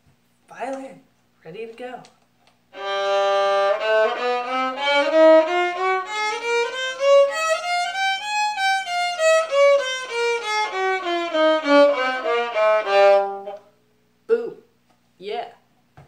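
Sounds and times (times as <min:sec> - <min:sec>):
solo violin bowed: 0:02.7 - 0:13.7.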